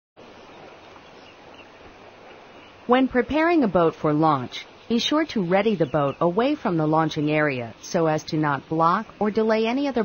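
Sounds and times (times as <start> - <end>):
outdoor hiss: 0.2 - 10.0.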